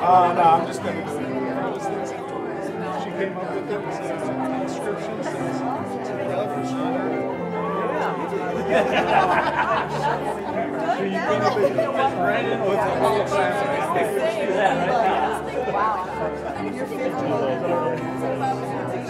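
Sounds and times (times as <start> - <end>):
crowd chatting: 0.0 - 19.0.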